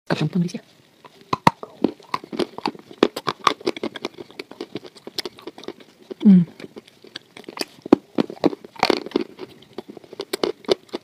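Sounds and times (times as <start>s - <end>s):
waffle crackling: 0.7s - 11.0s.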